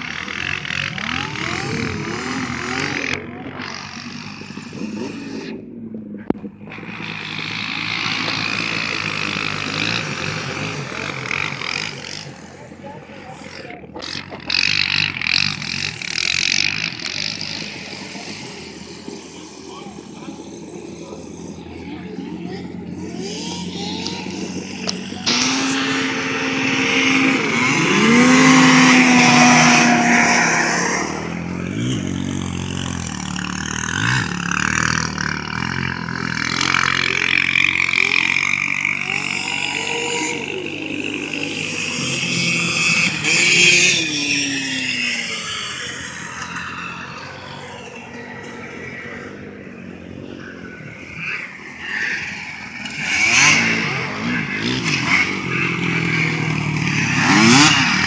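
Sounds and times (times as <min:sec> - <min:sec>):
snowmobile engines racing: 0:00.0 - 0:58.0.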